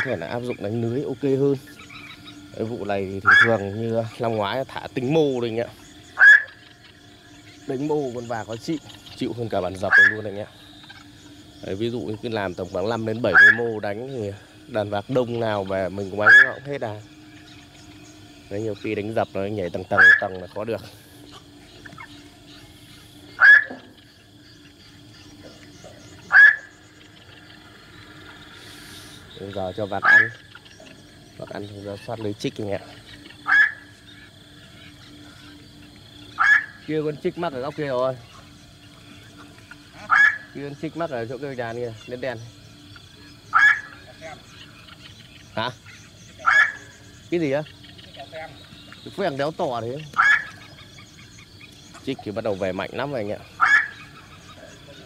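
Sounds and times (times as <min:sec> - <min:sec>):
faint steady drone: 0:00.0 - 0:55.0
harsh heron calls: 0:00.0 - 0:55.0
heron harsh call: 0:03.1 - 0:04.4, 0:05.2 - 0:07.0, 0:09.7 - 0:11.4, 0:13.1 - 0:14.1, 0:16.0 - 0:16.8, 0:19.8 - 0:20.5, 0:22.7 - 0:23.9, 0:26.2 - 0:26.8, 0:29.9 - 0:30.6, 0:33.2 - 0:35.6, 0:36.2 - 0:37.0, 0:39.4 - 0:40.9, 0:43.4 - 0:44.9, 0:45.8 - 0:47.2, 0:50.2 - 0:50.7, 0:53.4 - 0:55.0.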